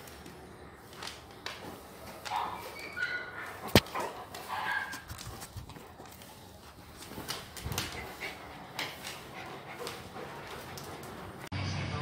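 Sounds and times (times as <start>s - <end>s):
dog claws on tiled floor: 0.0s - 11.5s.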